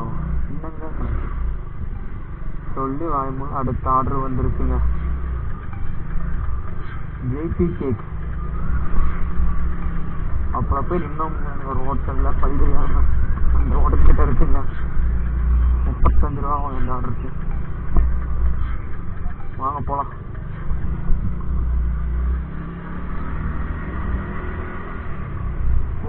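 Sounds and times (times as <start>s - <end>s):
motor scooter engine: 4.6s - 26.0s.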